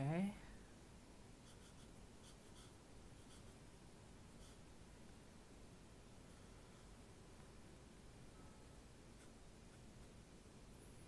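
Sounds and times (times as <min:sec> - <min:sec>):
marker strokes on paper: 0:01.4 - 0:03.6, 0:04.3 - 0:04.7.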